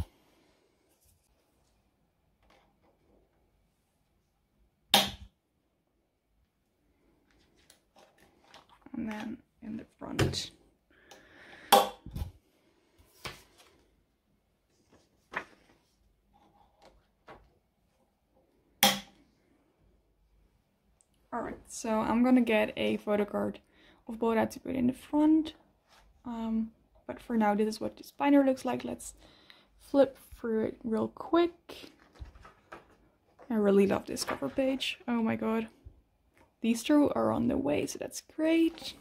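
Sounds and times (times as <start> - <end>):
rustling of paper and plastic pages: 7.2 - 10.5, 13.0 - 14.0, 14.6 - 18.0, 31.7 - 35.4.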